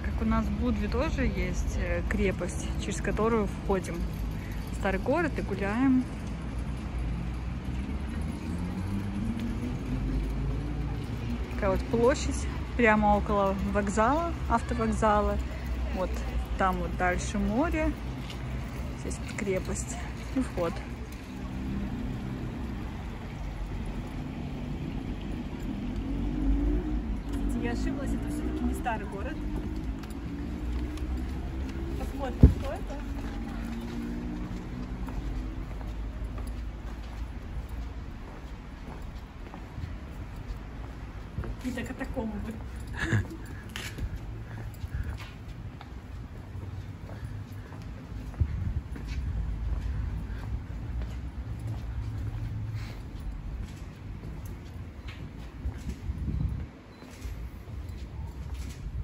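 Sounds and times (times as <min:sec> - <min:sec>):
distant traffic rumble: 0:00.0 - 0:59.0
footsteps on stone paving: 0:00.0 - 0:59.0.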